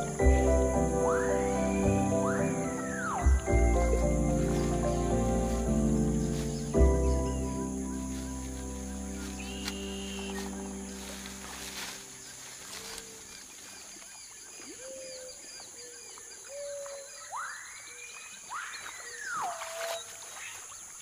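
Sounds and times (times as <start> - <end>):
long whistled calls: 0.0 - 5.5, 8.9 - 11.6, 16.5 - 20.7
soft music: 0.0 - 13.4
high insect drone: 0.0 - 15.0.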